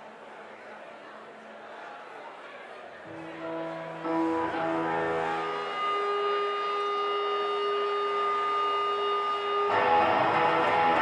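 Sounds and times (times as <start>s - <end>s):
electric guitar feedback: 3.1s - 11.0s
electric guitar strumming: 3.2s - 11.0s.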